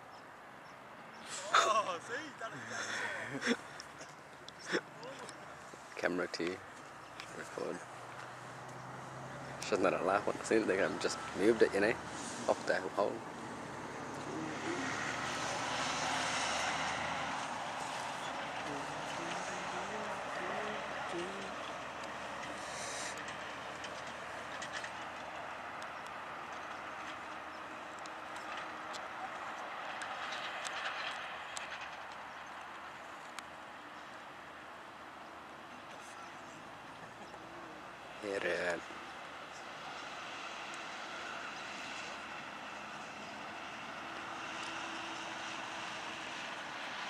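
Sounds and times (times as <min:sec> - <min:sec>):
distant voices talking: 0:01.3 - 0:13.3, 0:14.0 - 0:33.0.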